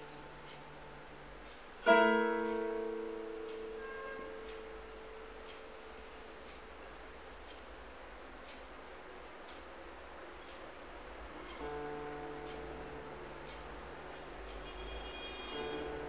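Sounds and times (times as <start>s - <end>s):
steady ticking: 0.0s - 16.0s
solo guitar notes ringing: 1.8s - 4.5s.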